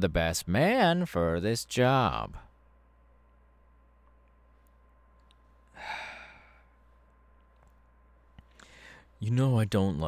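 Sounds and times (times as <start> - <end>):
man sighing: 5.7 - 6.7.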